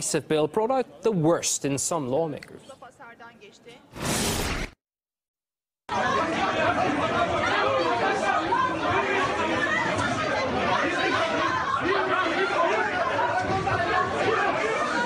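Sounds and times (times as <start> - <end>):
crowd of voices talking: 5.9 - 15.0.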